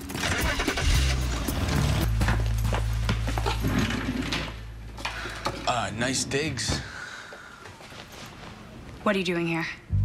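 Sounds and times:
car engine starting and pulling away: 0:00.0 - 0:04.9
background music with low bass: 0:00.0 - 0:05.0.

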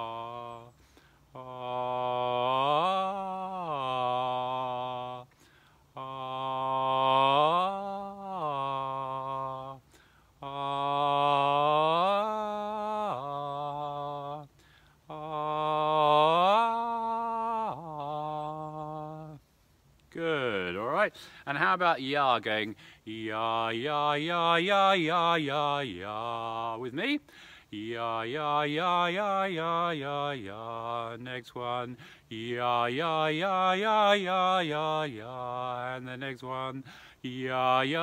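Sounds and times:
man singing vocal glide: 0:00.0 - 0:05.4, 0:06.0 - 0:09.8, 0:10.4 - 0:14.5, 0:15.1 - 0:19.4, 0:20.2 - 0:38.0.

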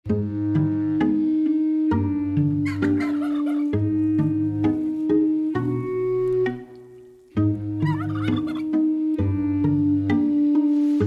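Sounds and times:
background music: 0:00.0 - 0:11.0
turkey gobbling: 0:02.6 - 0:05.0, 0:05.6 - 0:08.8.

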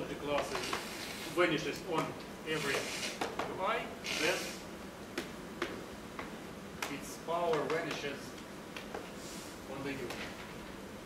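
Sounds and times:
chalk tapping on blackboard: 0:02.0 - 0:03.5, 0:05.2 - 0:08.2.

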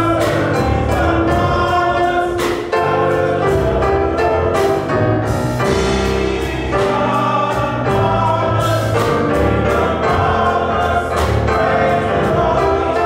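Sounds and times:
church band playing: 0:00.0 - 0:13.0
gospel choir singing: 0:00.0 - 0:13.0.

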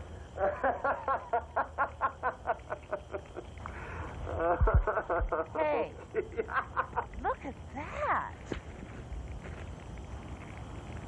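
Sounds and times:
person laughing: 0:00.4 - 0:03.5, 0:04.2 - 0:07.2.

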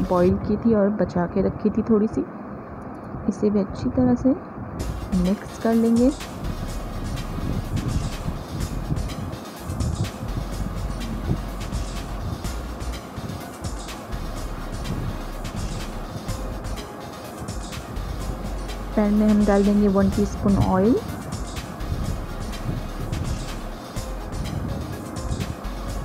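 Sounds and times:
background music: 0:00.0 - 0:00.6, 0:04.8 - 0:26.0.

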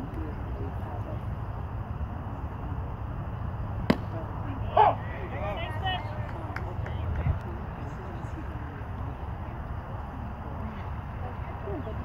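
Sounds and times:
low outdoor rumble: 0:00.0 - 0:12.0
baseball hitting leather mitt: 0:03.9 - 0:04.2.

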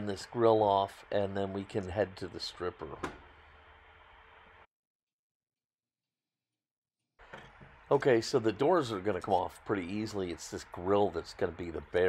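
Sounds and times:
faint room tone hiss: 0:00.0 - 0:04.7.

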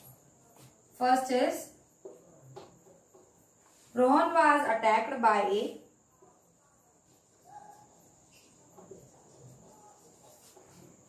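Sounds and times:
crickets chirring: 0:00.0 - 0:11.0
marker tapping on whiteboard: 0:02.0 - 0:03.4, 0:08.4 - 0:10.8.

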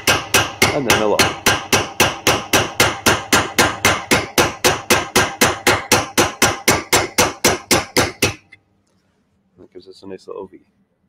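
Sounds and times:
hammer striking chisel on metal: 0:00.0 - 0:08.6.

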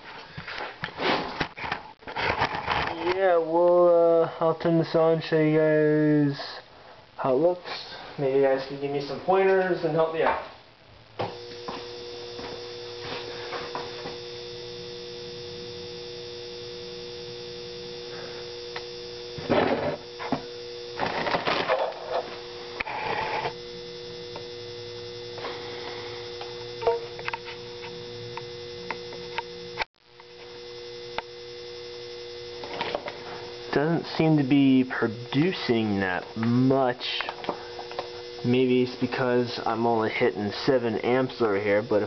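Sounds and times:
charger electrical hum: 0:00.0 - 0:42.0.

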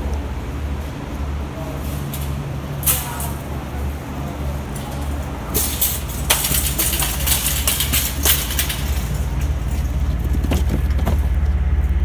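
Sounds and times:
steady low rumble: 0:00.0 - 0:12.0
metal shopping cart rattling: 0:01.8 - 0:03.7, 0:04.3 - 0:11.3.

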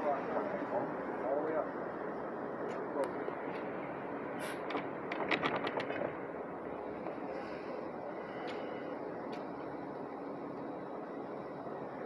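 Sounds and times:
diesel bus idling: 0:00.0 - 0:05.1, 0:06.0 - 0:12.0.

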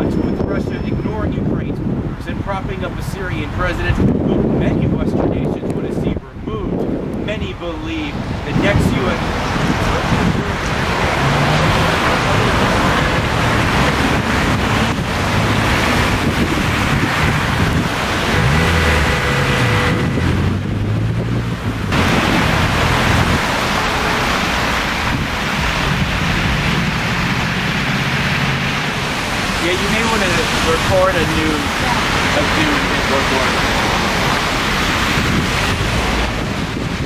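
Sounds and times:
wind on microphone: 0:00.0 - 0:37.0
tyres hissing on wet asphalt: 0:07.6 - 0:20.5, 0:21.3 - 0:37.0
engines running: 0:09.1 - 0:35.0.

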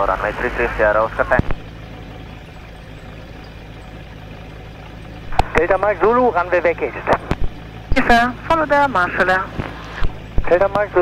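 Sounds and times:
propeller engine idling: 0:00.0 - 0:11.0.

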